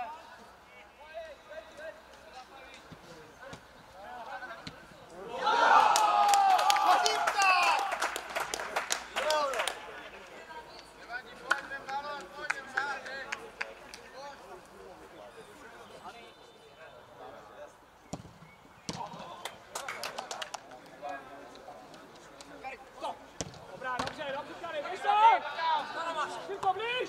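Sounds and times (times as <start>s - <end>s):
players shouting: 5.1s - 8.3s, 23.0s - 27.0s.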